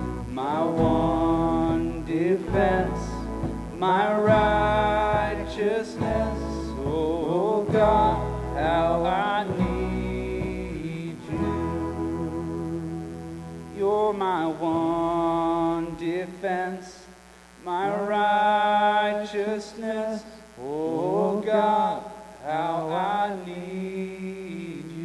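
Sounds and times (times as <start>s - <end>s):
man singing into microphone: 0.3s - 13.0s, 13.7s - 25.0s.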